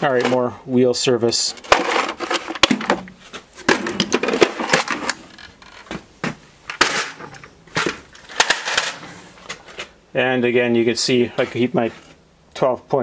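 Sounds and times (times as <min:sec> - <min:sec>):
metal tools clinking in a drawer: 0:03.6 - 0:05.8, 0:06.8 - 0:09.9.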